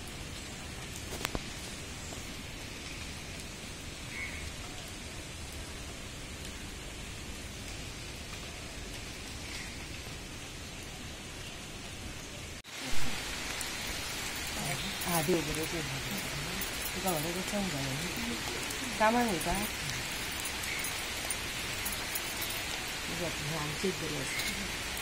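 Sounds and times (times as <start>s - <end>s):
rain falling: 0.0s - 25.0s.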